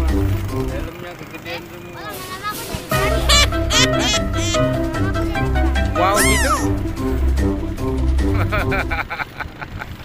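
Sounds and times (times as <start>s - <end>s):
cat meow: 6.2s - 6.7s.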